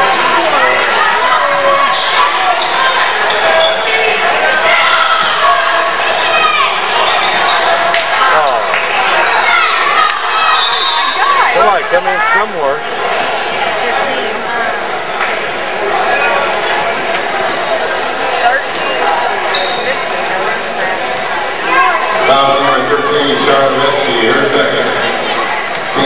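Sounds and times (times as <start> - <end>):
voices of players and crowd: 0.0 - 26.0.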